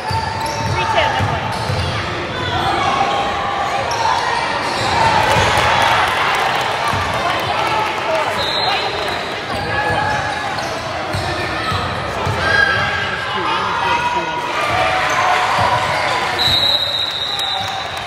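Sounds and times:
people chattering in a gym: 0.0 - 18.0.

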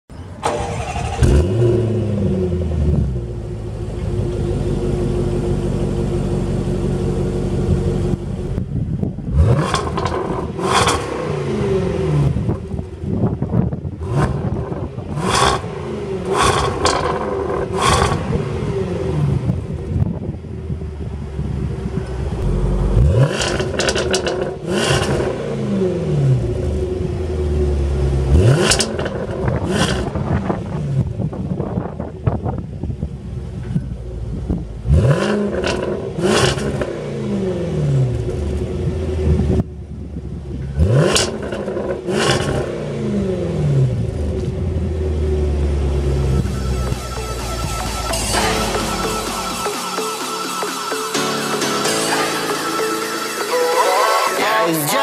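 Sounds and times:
car engine revving: 0.4 - 32.1, 33.5 - 55.0
exhaust cracks: 7.7 - 18.4, 21.3 - 25.4, 28.2 - 37.0, 38.0 - 47.8.

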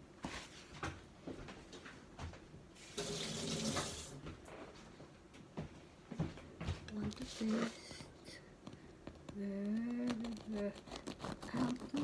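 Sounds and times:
water running: 2.8 - 4.4.

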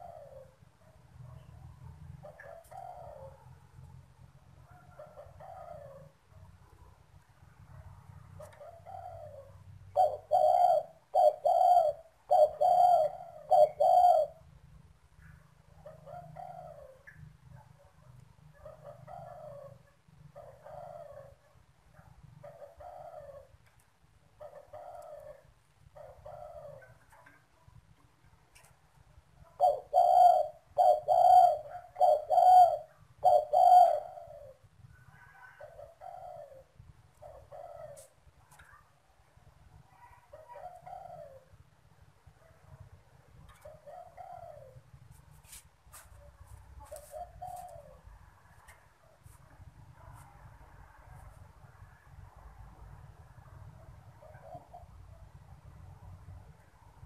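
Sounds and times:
dove cooing: 0.0 - 0.7, 1.3 - 3.6, 4.7 - 6.2, 8.4 - 14.5, 15.7 - 17.2, 18.5 - 27.6, 29.3 - 38.9, 39.8 - 41.8, 43.3 - 50.2, 54.0 - 55.1.

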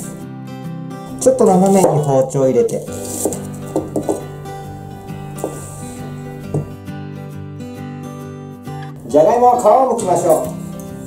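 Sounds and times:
background music: 0.0 - 11.0
knife cutting onion on board: 1.5 - 2.1, 2.8 - 6.7.

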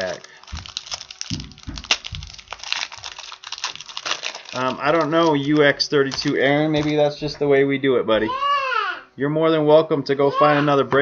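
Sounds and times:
foil wrapper crinkling: 0.0 - 7.2
dull bumps of handling: 0.4 - 4.0.

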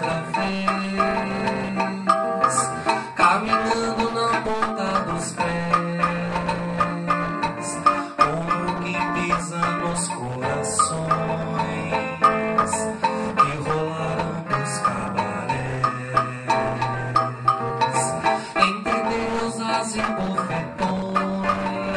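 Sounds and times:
acoustic guitar picking: 0.0 - 21.9
hand percussion: 0.0 - 21.9
man singing wordless notes: 0.0 - 21.9.

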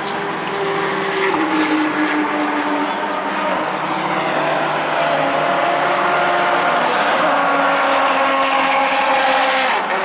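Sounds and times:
racing car engine at speed: 0.0 - 10.0.

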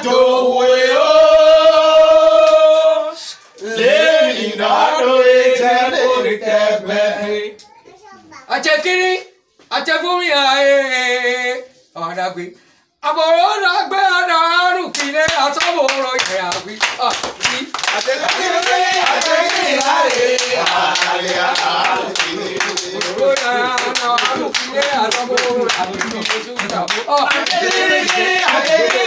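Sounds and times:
men singing a chant: 0.0 - 7.6, 17.8 - 29.0
lively voices: 0.0 - 29.0
people clapping hands: 2.2 - 2.7, 14.9 - 29.0.

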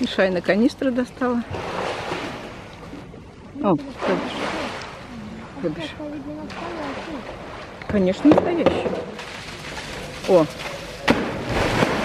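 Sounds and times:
water splashing: 0.0 - 12.0.

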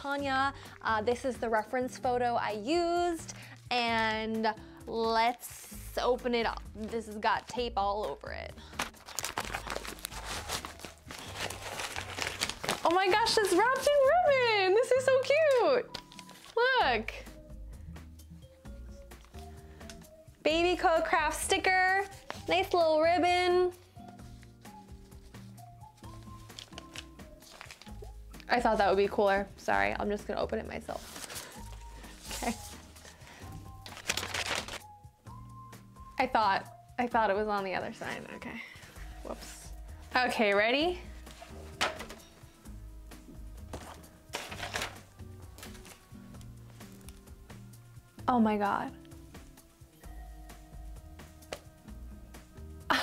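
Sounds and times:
soft background music: 0.0 - 53.0
padded paper mailer crinkling: 8.7 - 14.1, 26.1 - 28.1, 31.0 - 34.8, 43.7 - 46.0
package crackling: 8.8 - 14.1, 26.4 - 28.1, 33.7 - 34.8, 43.7 - 47.3.

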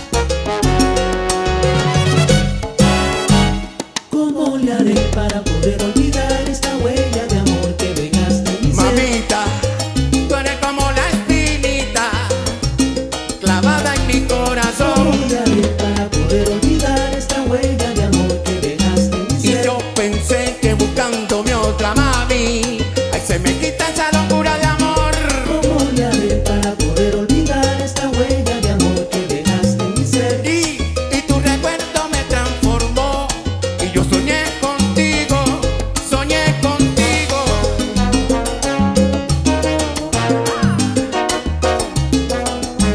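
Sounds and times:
pulsing bass line: 0.0 - 3.8, 4.8 - 42.9
latin percussion: 0.0 - 42.9
salsa band playing: 0.0 - 42.9.

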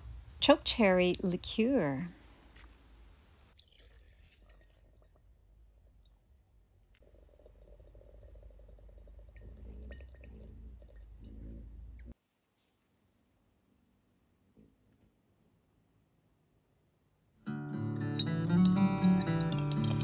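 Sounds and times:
liquid trickling into a jar: 3.5 - 6.2, 7.0 - 11.2, 18.2 - 20.0.

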